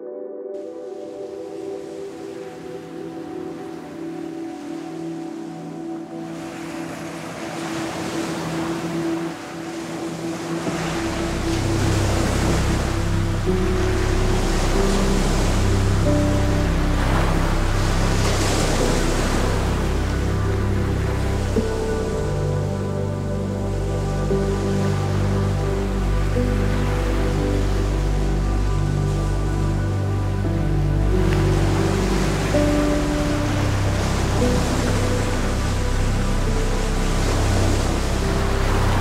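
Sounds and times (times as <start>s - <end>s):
low bass notes: 10.8s - 39.0s.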